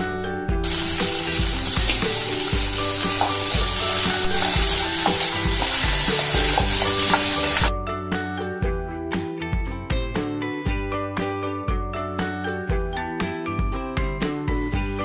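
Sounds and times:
background music with a beat: 0:00.0 - 0:15.0
food sizzling in hot oil: 0:00.6 - 0:07.7.

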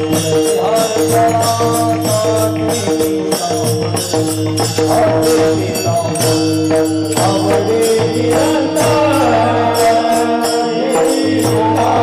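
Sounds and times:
hand cymbals struck: 0:00.0 - 0:12.0
person singing: 0:07.2 - 0:12.0.

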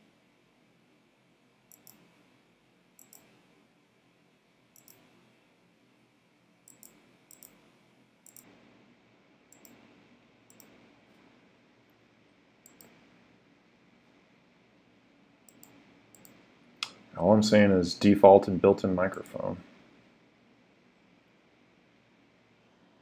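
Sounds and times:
computer mouse clicks: 0:01.7 - 0:02.2, 0:03.0 - 0:03.4, 0:04.7 - 0:05.2, 0:06.6 - 0:08.6, 0:09.5 - 0:09.9, 0:10.5 - 0:11.3, 0:12.6 - 0:13.1, 0:15.5 - 0:17.0.

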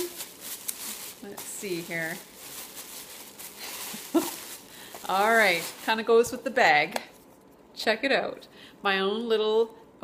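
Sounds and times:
gift bag rustling: 0:00.0 - 0:06.4.

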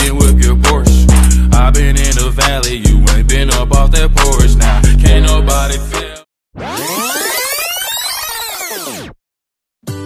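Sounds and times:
synthesizer pitch sweep: 0:06.6 - 0:09.2.

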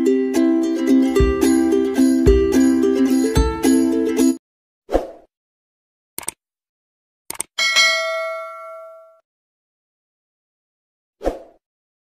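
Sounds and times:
mouse clicks: 0:06.2 - 0:06.4, 0:07.3 - 0:07.5
bell ding: 0:07.6 - 0:09.2.

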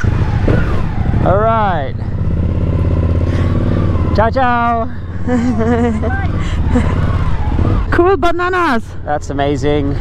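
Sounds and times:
motorcycle engine pulling away: 0:00.0 - 0:08.0.

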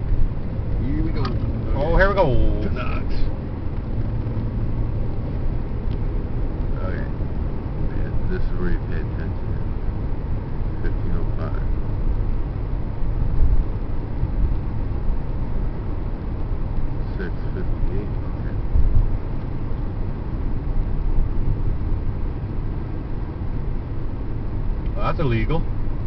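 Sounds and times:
car cabin road and engine rumble: 0:00.0 - 0:26.0.

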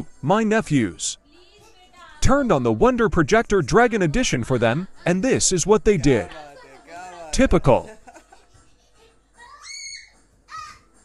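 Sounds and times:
child's high-pitched squeal: 0:09.4 - 0:10.9.

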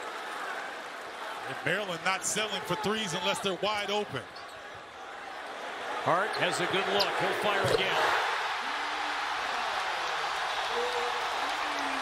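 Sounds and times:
crowd cheering and clapping: 0:00.0 - 0:03.4, 0:04.9 - 0:12.0.

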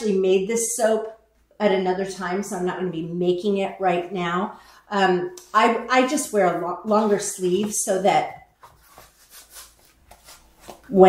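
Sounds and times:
clothing rustling: 0:08.5 - 0:11.0.

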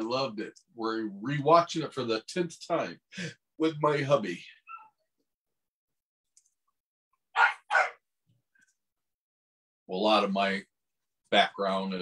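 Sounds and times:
dog barking: 0:07.4 - 0:08.0.

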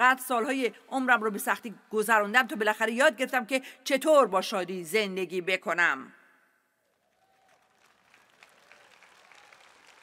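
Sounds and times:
faint audience applause: 0:06.8 - 0:10.0.

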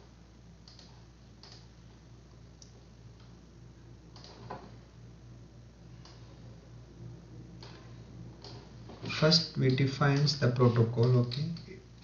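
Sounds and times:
low electrical hum: 0:00.0 - 0:12.0
computer mouse clicks: 0:00.6 - 0:01.7, 0:04.1 - 0:04.7, 0:06.0 - 0:06.3, 0:07.6 - 0:08.7.

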